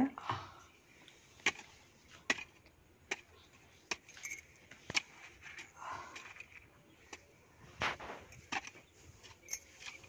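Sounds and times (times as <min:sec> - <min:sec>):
digging tool striking stony soil: 0:01.4 - 0:10.0.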